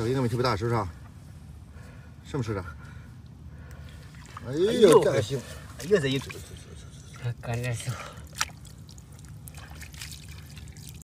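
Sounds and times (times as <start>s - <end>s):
water trickling and dripping: 3.6s - 11.0s.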